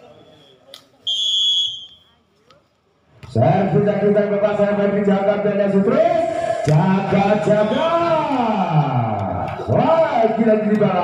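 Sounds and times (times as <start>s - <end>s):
faint short whistle toot: 0.0s - 2.1s
referee's whistle blast: 0.0s - 2.1s, 7.4s - 8.1s.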